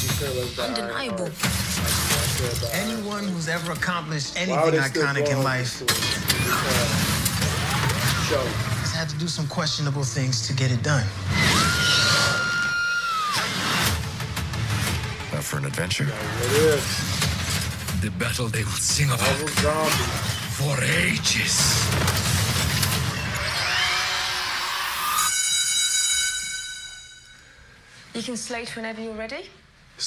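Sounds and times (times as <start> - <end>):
high bell-like ringing tone: 25.0 - 27.7.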